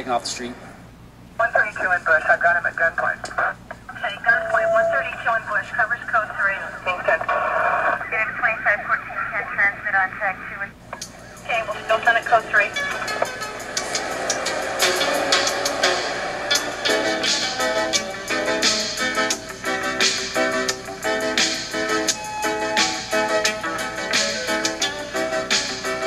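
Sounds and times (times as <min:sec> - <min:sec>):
thin radio-like voices talking: 0:01.4 - 0:10.8, 0:11.4 - 0:13.3
music with beat and guitar: 0:12.8 - 0:26.0.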